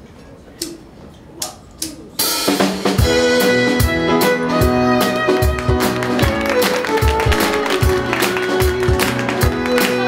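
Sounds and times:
drum kit with cymbal crash: 2.1 - 4.8
piano and violin playing: 3.1 - 10.0.

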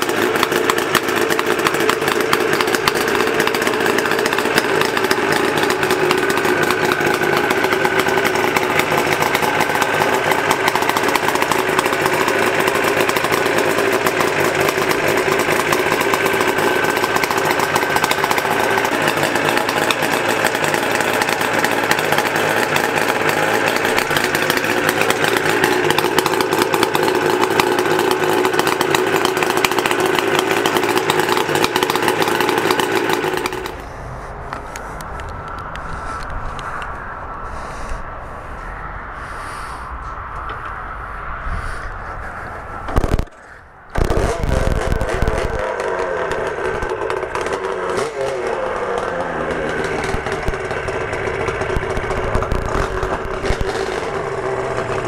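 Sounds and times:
two-stroke engine running: 0.0 - 36.2, 42.8 - 55.0.

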